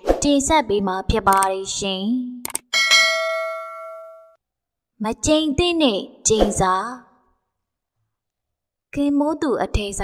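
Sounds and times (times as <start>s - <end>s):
bright bell ding: 2.8s - 4.4s.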